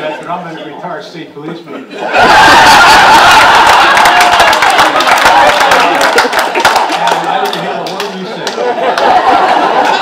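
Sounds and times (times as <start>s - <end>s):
crowd laughing loudly: 1.9s - 10.0s.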